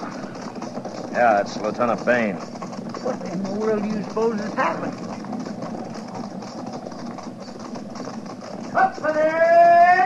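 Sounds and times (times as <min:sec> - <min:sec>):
horses' hoofbeats: 0:00.0 - 0:10.0.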